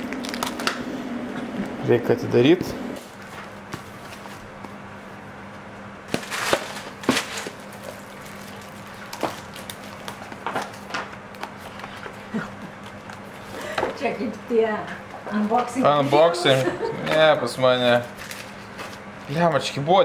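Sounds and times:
plastic wrap rustling: 0.0 - 0.8, 6.1 - 12.1, 17.8 - 19.1
faint steady hum: 0.0 - 20.0.

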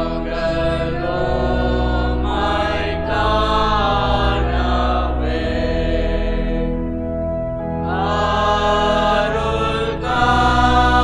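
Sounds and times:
choir singing a hymn: 0.0 - 11.0
sustained organ chords: 0.0 - 11.0.

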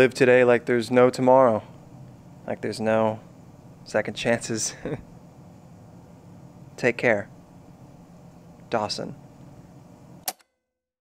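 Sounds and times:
room hiss: 0.0 - 10.2.

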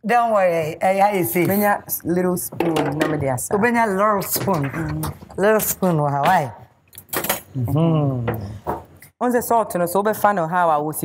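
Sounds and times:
woman speaking: 0.0 - 6.7, 9.2 - 11.0.

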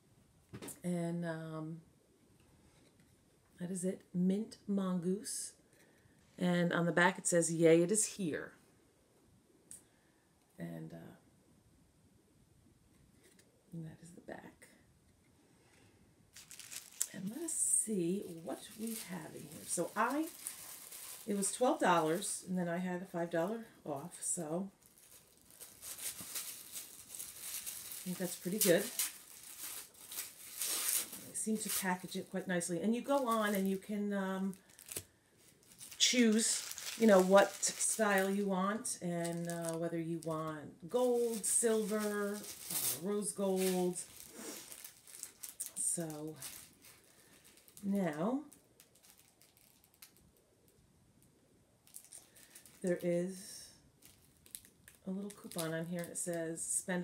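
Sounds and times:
paper handling: 16.4 - 17.2, 24.9 - 32.2, 35.7 - 38.4, 41.0 - 45.7
package rustling and crinkling: 16.4 - 22.5, 23.1 - 50.4, 51.8 - 53.0, 54.0 - 56.3.

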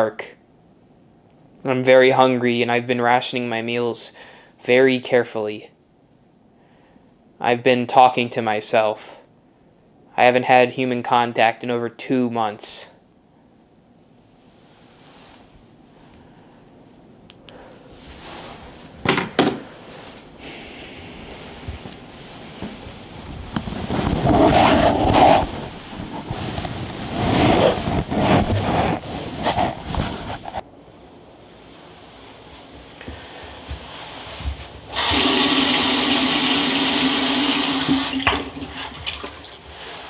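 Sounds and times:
running splashing water: 35.4 - 39.7.

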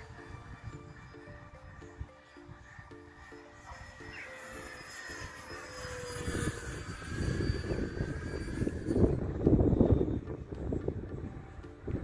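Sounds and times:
electric ducted fan whining: 0.0 - 12.0.

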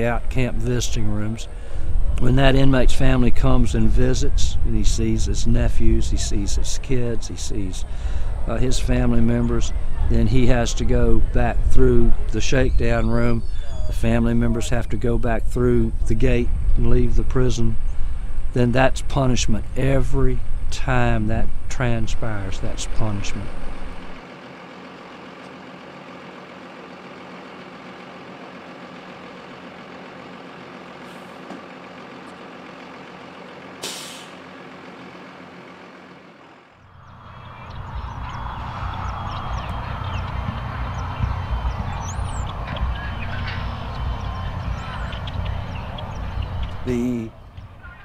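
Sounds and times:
low rumble with high chirps: 0.0 - 24.2, 25.1 - 48.0
bus engine idling: 0.0 - 48.0
air brakes hissing: 1.5 - 2.1, 7.8 - 8.4, 33.8 - 34.5.

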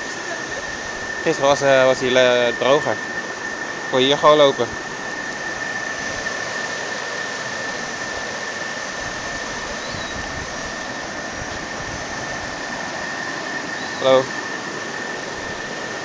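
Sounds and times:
thin high whine: 0.0 - 16.0.

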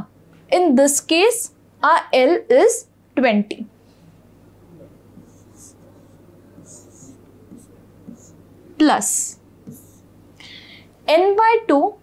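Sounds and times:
faint steady hum: 0.0 - 12.0
stylus scratching on display board: 5.1 - 10.1.

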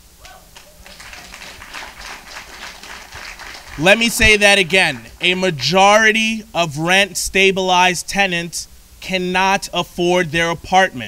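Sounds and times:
audience applause: 0.5 - 5.4.

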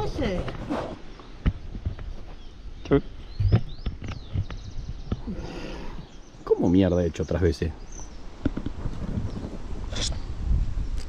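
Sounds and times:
high falling bird chirps: 1.0 - 8.4.

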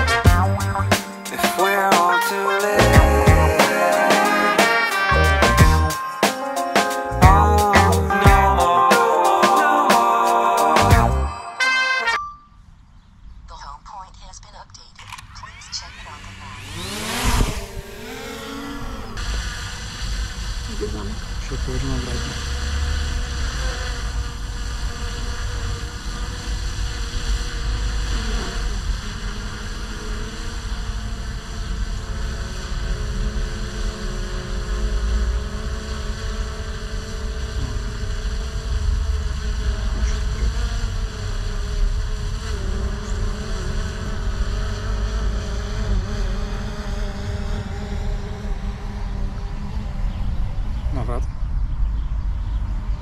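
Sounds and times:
drone propellers buzzing: 0.0 - 12.0, 15.0 - 51.7
wind rumble on microphone: 16.7 - 18.0.

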